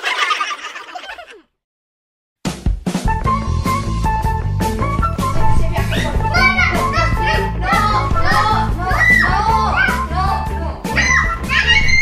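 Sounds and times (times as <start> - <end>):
music with steady beat: 2.4 - 11.9
child's excited cries: 5.9 - 7.1, 8.2 - 10.0, 11.0 - 12.0.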